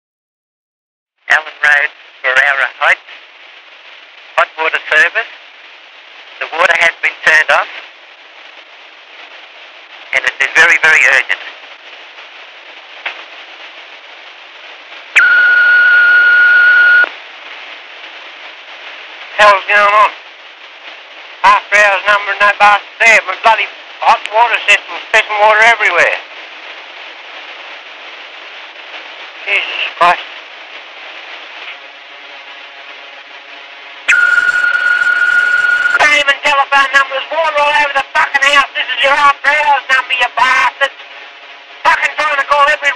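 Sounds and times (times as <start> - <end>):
cassette tape hiss: 1.3 - 42.9
answering machine beep: 15.2 - 17.1, 34.1 - 36.0.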